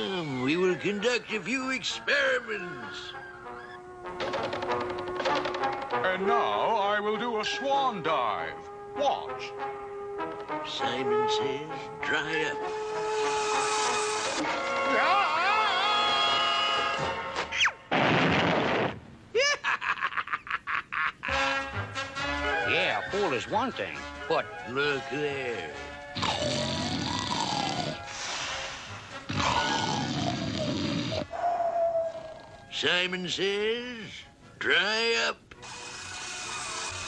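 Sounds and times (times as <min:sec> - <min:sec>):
music: 0:00.0 - 0:17.7, 0:21.2 - 0:31.2, 0:32.6 - 0:37.0
cartoon hissing whistle blasts: 0:13.0 - 0:14.4, 0:35.6 - 0:37.0.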